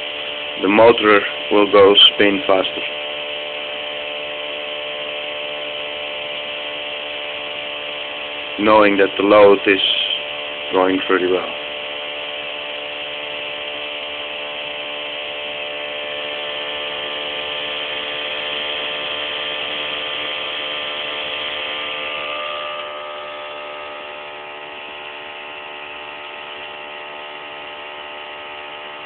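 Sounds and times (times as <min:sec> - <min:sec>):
pulse motor whine: 0:00.0 - 0:29.0.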